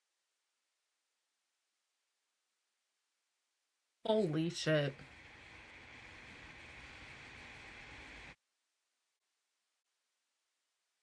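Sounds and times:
microphone hiss: 0:04.1 - 0:08.4.

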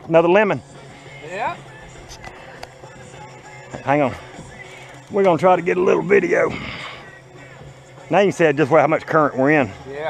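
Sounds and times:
rock music from radio: 0:00.1 - 0:10.0
man speaking: 0:05.1 - 0:06.8.

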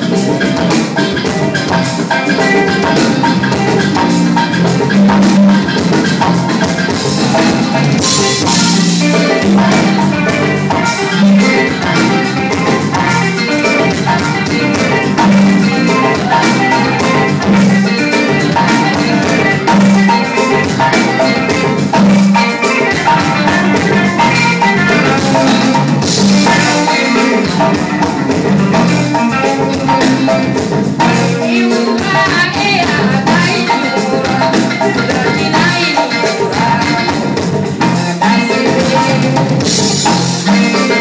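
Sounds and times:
drum kit and percussion: 0:00.0 - 0:41.0
electric guitars: 0:00.0 - 0:41.0
live band playing: 0:00.0 - 0:41.0.

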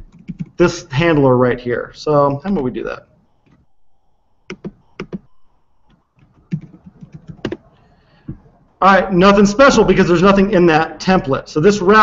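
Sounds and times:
typing on computer keyboard: 0:00.0 - 0:00.6, 0:04.5 - 0:05.3, 0:06.2 - 0:07.6.

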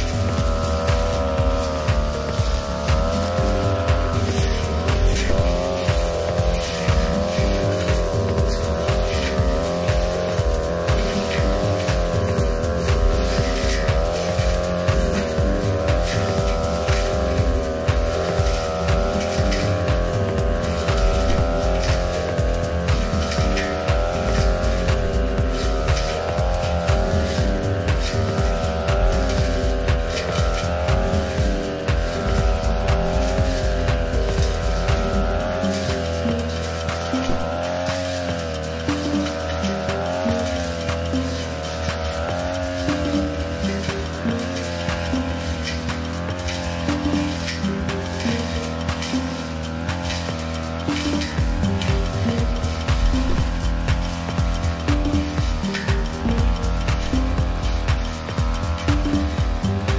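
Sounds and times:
background music with beat: 0:00.0 - 0:59.9
brush cutter engine running: 0:00.0 - 0:59.9.

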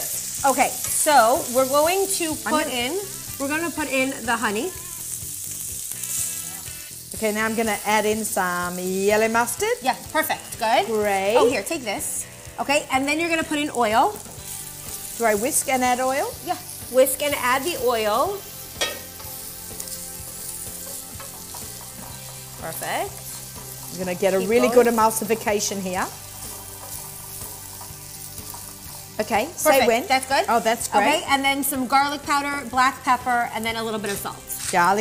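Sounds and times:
meat sizzling in a skillet: 0:00.0 - 0:35.0.

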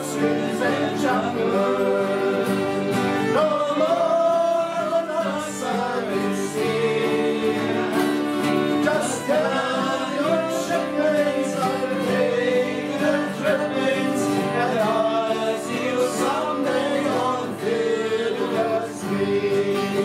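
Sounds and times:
strummed acoustic guitars: 0:00.0 - 0:20.0
voices singing a folk song: 0:00.0 - 0:20.0.

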